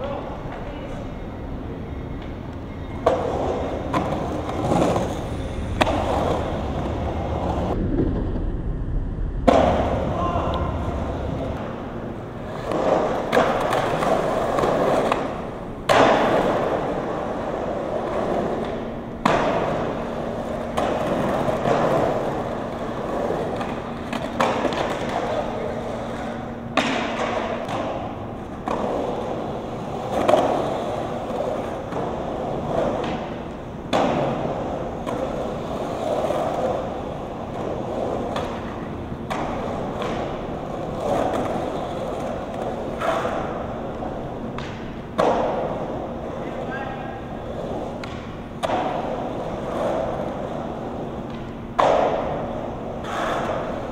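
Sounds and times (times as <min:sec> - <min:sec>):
skateboard wheels rolling on concrete: 0:00.0 - 0:53.9
skateboard knocking: 0:03.0 - 0:08.6.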